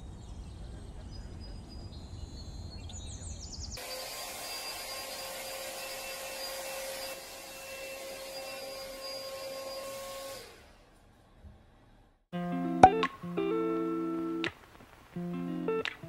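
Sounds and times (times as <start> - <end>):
hair dryer blowing: 3.8 - 10.6.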